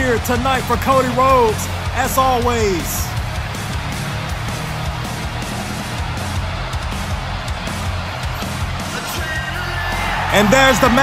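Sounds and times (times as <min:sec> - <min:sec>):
rock music with electric guitar: 0:00.0 - 0:11.0.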